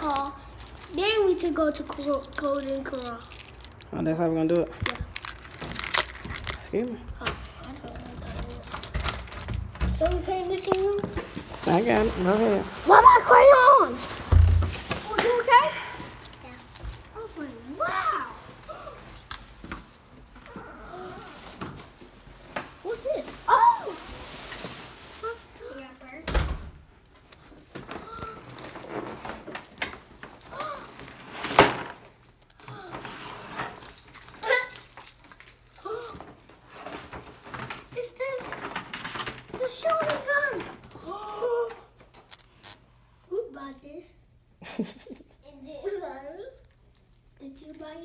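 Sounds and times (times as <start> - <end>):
gift packaging rustling: 0.0 - 26.2, 27.0 - 43.0.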